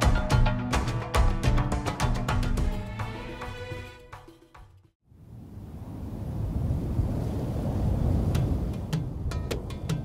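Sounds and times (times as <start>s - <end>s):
low rumbling wind: 5.1s - 10.0s.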